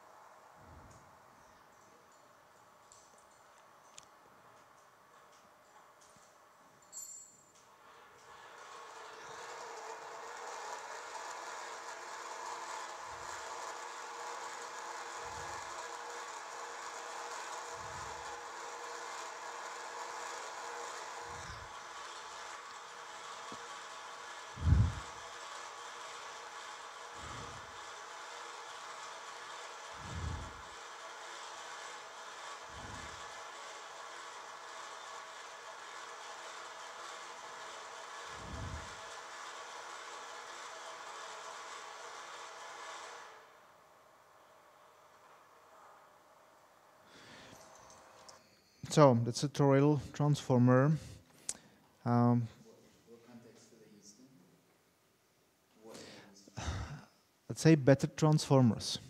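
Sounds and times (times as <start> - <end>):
winding machine hum and whir: 0.0 - 51.2.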